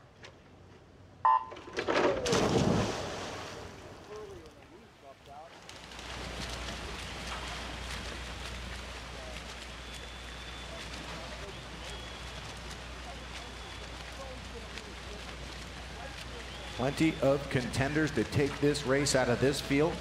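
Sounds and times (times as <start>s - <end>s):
electronic start beep: 1.3s - 1.6s
swimmers splashing: 1.3s - 20.0s
crowd cheering: 6.2s - 20.0s.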